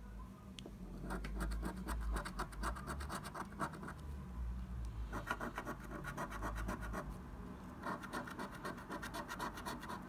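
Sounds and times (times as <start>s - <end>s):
coin scratching scratch card: 1.0s - 4.0s, 5.1s - 7.1s, 7.8s - 10.0s.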